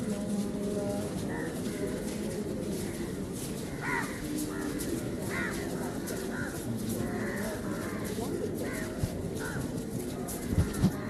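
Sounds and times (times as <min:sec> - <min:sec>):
crows cawing: 0:01.3 - 0:09.8, 0:10.4 - 0:11.0.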